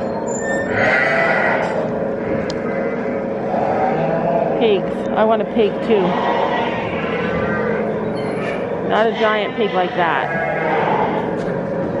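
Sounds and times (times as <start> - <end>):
indistinct voices: 0.7 - 12.0.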